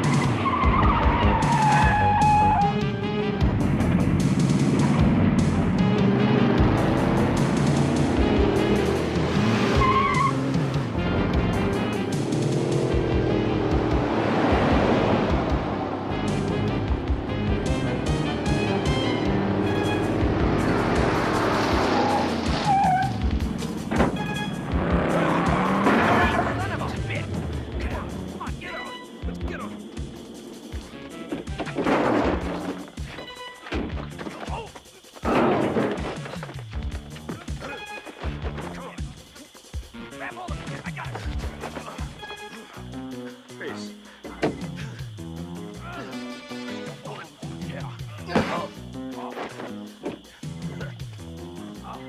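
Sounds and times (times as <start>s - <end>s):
tyre squeal: 0.0s - 2.8s, 9.6s - 10.6s, 21.8s - 23.3s, 23.9s - 26.6s, 37.3s - 38.4s
car engine: 0.0s - 32.9s
film music: 0.0s - 52.0s
knocks and thumps from scuffle: 31.3s - 34.6s.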